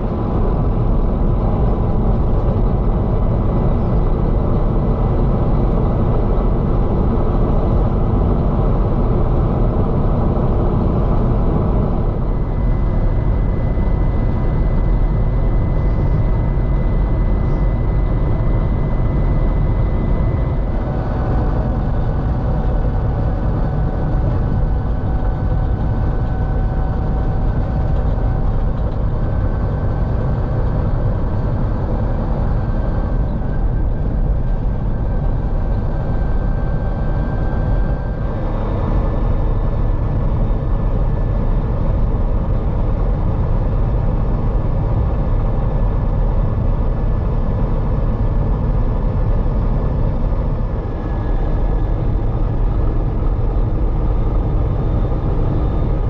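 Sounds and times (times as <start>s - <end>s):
road noise: 0.0s - 56.0s
truck engine drone: 0.0s - 56.0s.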